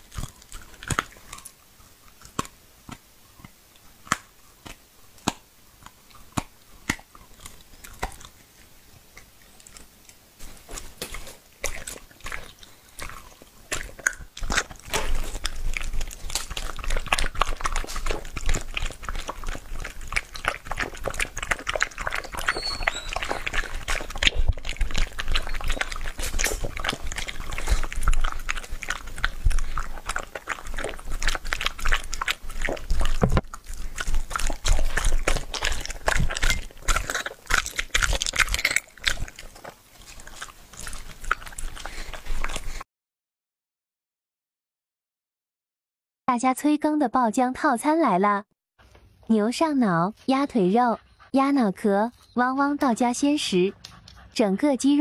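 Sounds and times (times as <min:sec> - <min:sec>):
dog chewing meat: 0:00.0 - 0:42.8, 0:50.1 - 0:54.4
dog licking bowl: 0:10.4 - 0:42.8, 0:50.6 - 0:54.6.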